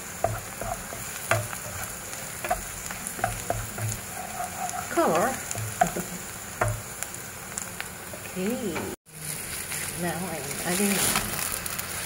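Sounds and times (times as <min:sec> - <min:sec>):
vegetables sizzling in oil: 0:00.0 - 0:12.0
wooden spatula scraping pan: 0:00.2 - 0:06.8.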